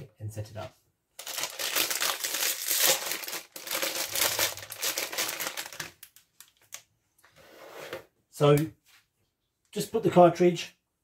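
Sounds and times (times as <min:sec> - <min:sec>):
plastic wrapper crackling: 0:01.2 - 0:06.9.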